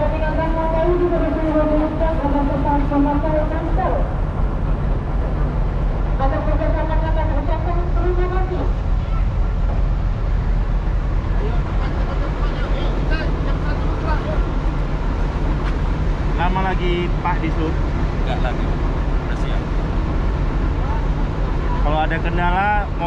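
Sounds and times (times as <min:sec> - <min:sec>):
bus engine idling: 0:00.0 - 0:23.0.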